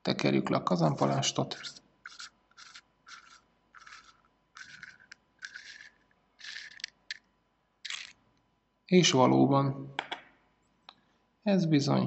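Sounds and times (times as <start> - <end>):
scratchy rasps of threaded metal: 1.0 - 7.2, 7.9 - 8.2.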